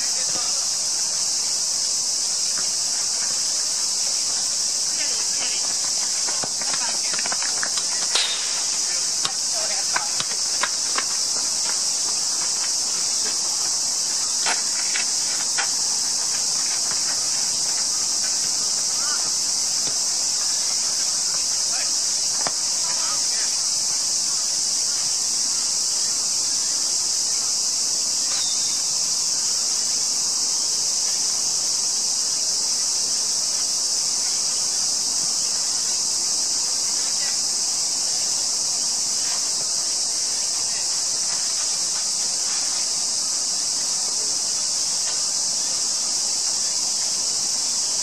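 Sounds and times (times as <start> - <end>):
cicadas droning: 0.0 - 48.0
insect chorus: 0.0 - 48.0.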